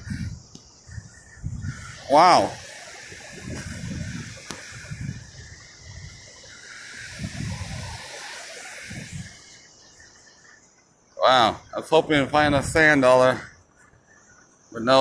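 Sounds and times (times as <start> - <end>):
ocean surf on sandy beach: 1.8 - 10.0.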